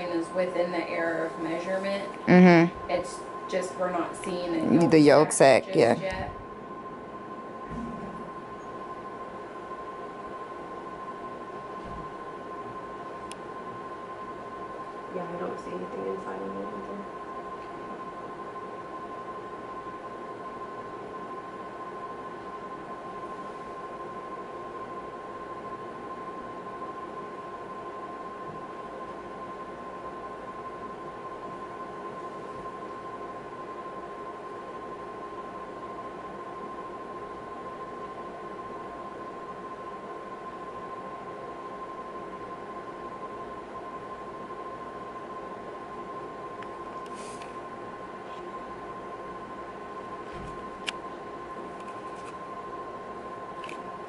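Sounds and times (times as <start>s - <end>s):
electronic machine whine: 0.0s - 54.0s.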